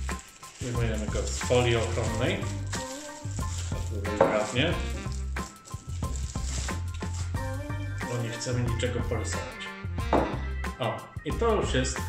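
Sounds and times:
plastic wrapping crinkling: 0.0s - 8.8s
background music: 0.0s - 12.0s.

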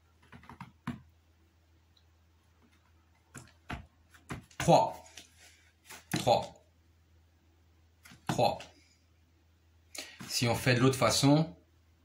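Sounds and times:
hands tapping on floor mat: 3.3s - 5.3s.

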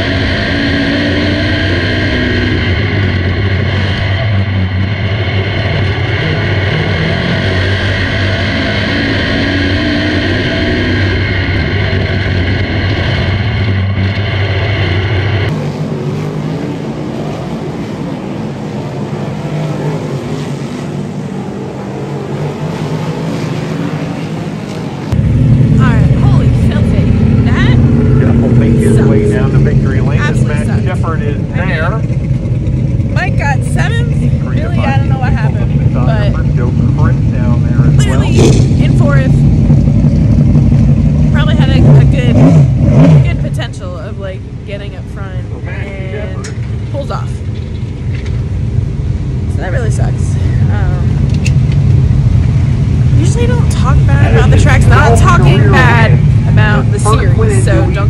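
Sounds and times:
race car engines running hard: 0.0s - 58.0s
steady engine drone: 0.0s - 58.0s
woman talking: 25.8s - 27.8s, 33.2s - 36.4s, 38.0s - 39.4s, 41.3s - 42.4s, 43.2s - 47.4s, 49.5s - 51.2s, 53.1s - 58.0s.

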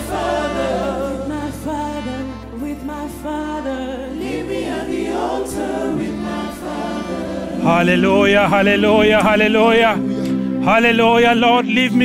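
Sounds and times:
voices singing gospel song: 0.0s - 12.0s.

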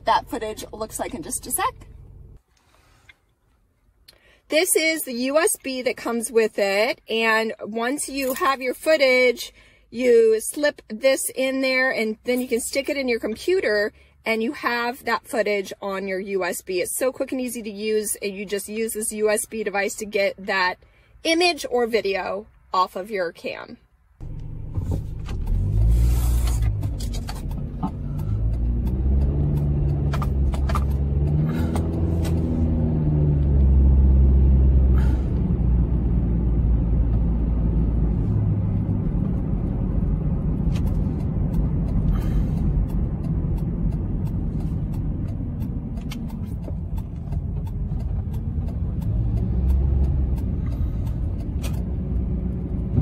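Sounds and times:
car engine: 0.0s - 14.6s, 24.1s - 53.0s
road rumble: 0.0s - 53.0s.

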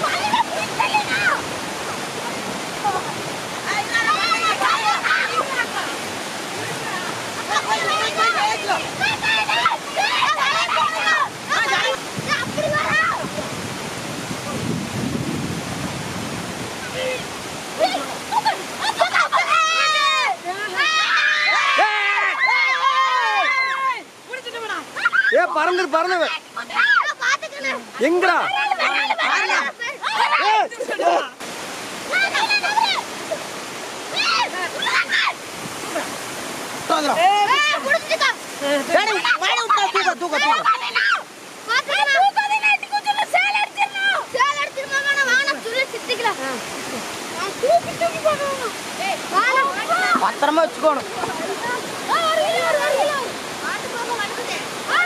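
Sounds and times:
excited voices calling: 0.0s - 1.6s, 2.7s - 13.6s, 16.8s - 31.4s, 32.0s - 36.1s, 36.9s - 55.0s
water rushing and splashing: 0.0s - 55.0s.

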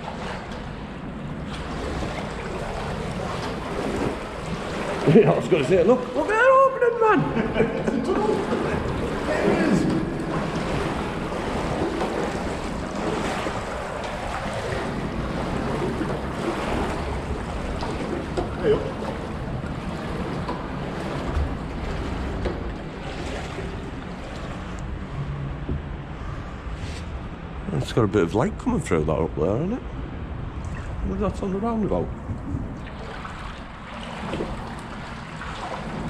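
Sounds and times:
wading through shallow water: 0.0s - 27.8s, 30.1s - 36.0s.

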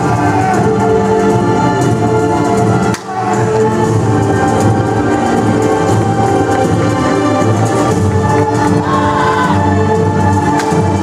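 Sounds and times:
choral singing with orchestra: 0.0s - 11.0s.

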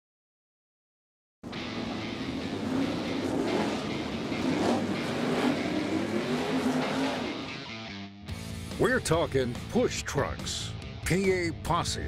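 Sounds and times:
racing car engines: 1.5s - 9.7s.

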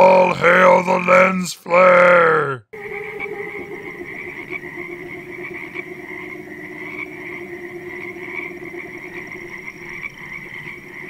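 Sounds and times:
chorus of frogs croaking: 2.8s - 11.0s.

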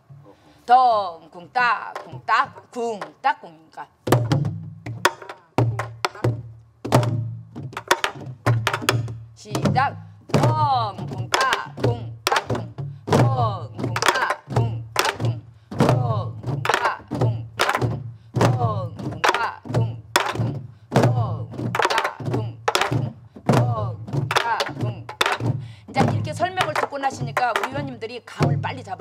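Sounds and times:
barrel drums booming: 4.1s - 29.0s.

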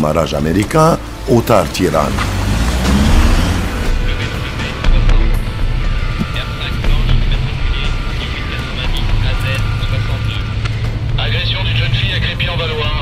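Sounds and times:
background music: 0.0s - 13.0s
car engine speeding away: 0.4s - 13.0s.

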